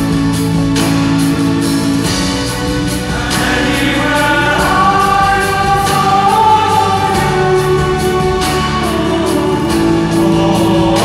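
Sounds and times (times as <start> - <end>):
male choir singing chords: 0.0 - 11.0.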